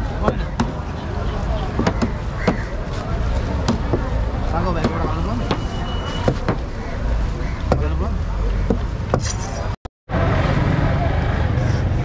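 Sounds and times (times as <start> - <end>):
low rumble of traffic: 0.0 - 12.0
knife chopping on wooden block: 1.8 - 2.7, 3.6 - 4.1.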